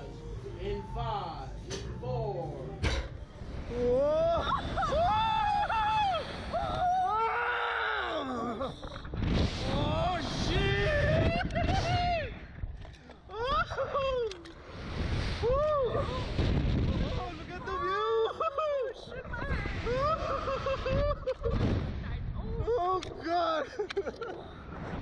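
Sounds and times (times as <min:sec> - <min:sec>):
man and woman screaming: 0:03.8 - 0:08.6
wind rushing over microphone: 0:08.8 - 0:12.8, 0:14.6 - 0:18.0, 0:19.2 - 0:23.3.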